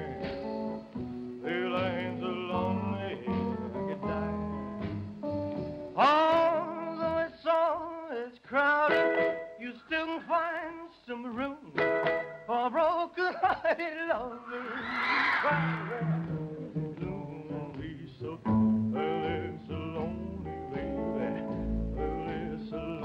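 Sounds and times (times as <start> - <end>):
man singing: 0.0 - 0.6, 1.4 - 4.9, 5.9 - 23.0
rock band playing: 0.0 - 1.4.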